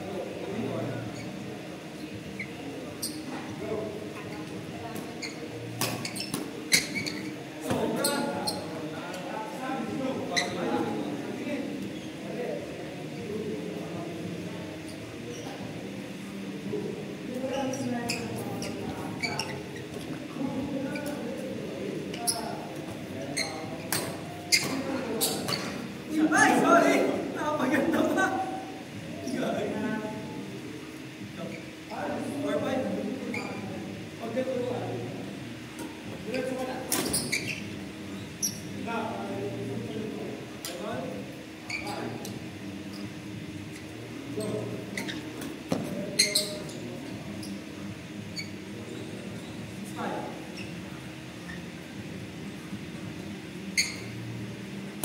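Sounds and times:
murmur of distant voices: 0:00.0 - 0:55.0
faint shoe squeaks: 0:01.0 - 0:03.4, 0:04.2 - 0:08.8, 0:10.3 - 0:10.7, 0:11.8 - 0:12.3, 0:17.4 - 0:21.5, 0:22.1 - 0:25.9, 0:33.2 - 0:33.7, 0:36.3 - 0:38.8, 0:41.6 - 0:43.1, 0:43.8 - 0:49.9, 0:50.5 - 0:51.8, 0:53.6 - 0:54.4.

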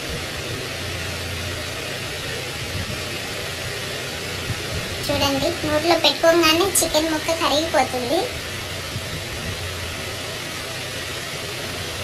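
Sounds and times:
low hum: 0:00.0 - 0:12.0
steady background hiss: 0:00.0 - 0:12.0.

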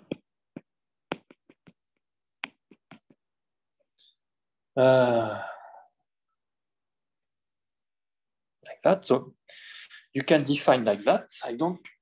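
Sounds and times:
stylus tapping on glass screen: 0:00.0 - 0:01.8.

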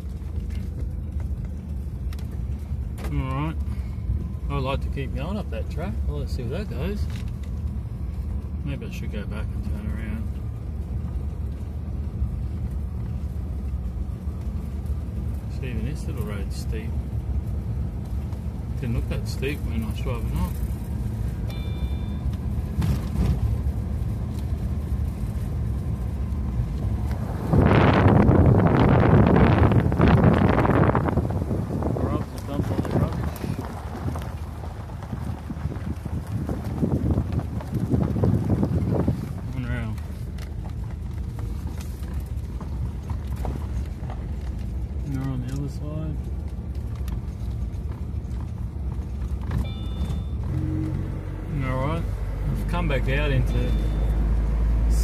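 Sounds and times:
car engine and road hum: 0:00.0 - 0:55.0
rough rumbling and rattling: 0:00.0 - 0:55.0.

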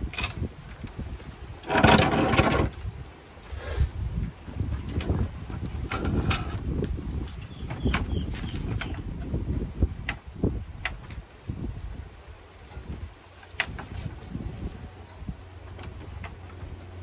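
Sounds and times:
wooden boards knocking: 0:01.6 - 0:02.7
cordless drill set down on concrete: 0:01.6 - 0:02.8.

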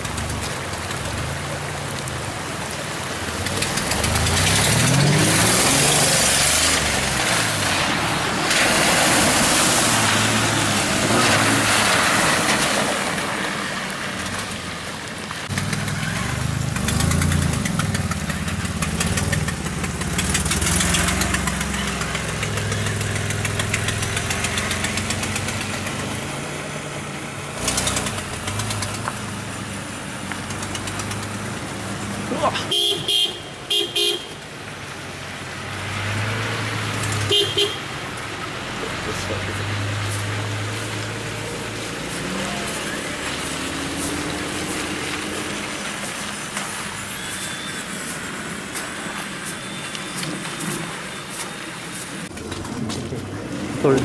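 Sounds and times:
tyres on wet dirt road: 0:00.0 - 0:54.0
vehicle engine revving: 0:03.2 - 0:12.5, 0:15.4 - 0:32.8, 0:38.4 - 0:46.3.

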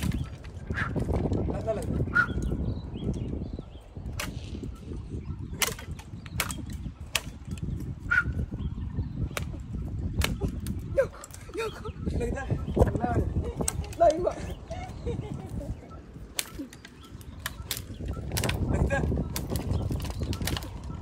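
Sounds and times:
twigs snapping: 0:04.0 - 0:04.6, 0:05.5 - 0:08.2, 0:09.2 - 0:11.6, 0:13.4 - 0:14.6, 0:16.2 - 0:21.0.

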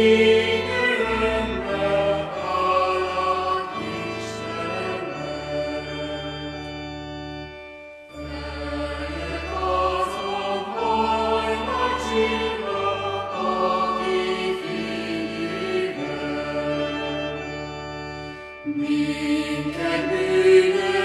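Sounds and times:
choir singing: 0:00.0 - 0:06.8, 0:08.2 - 0:18.0, 0:18.6 - 0:21.0
sustained low accompaniment: 0:00.0 - 0:21.0.

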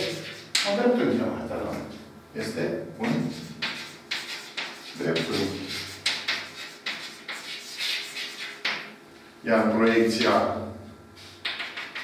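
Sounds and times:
chalk scratching on blackboard: 0:00.0 - 0:00.6, 0:03.0 - 0:09.0, 0:11.2 - 0:12.0.

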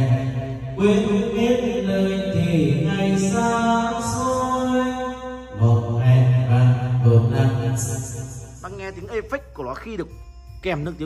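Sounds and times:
man singing with heavy echo: 0:00.0 - 0:08.7.

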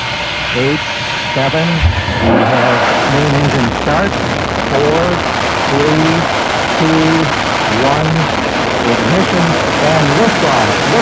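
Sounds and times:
rocket engines roaring: 0:00.2 - 0:11.0.

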